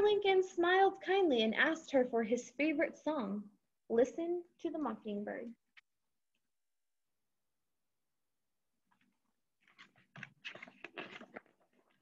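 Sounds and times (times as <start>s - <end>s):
book rustling and scraping: 8.9s - 12.0s.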